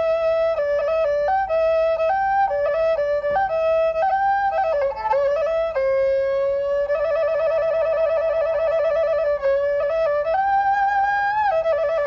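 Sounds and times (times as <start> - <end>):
solo flute melody with trill: 0.0 - 12.0.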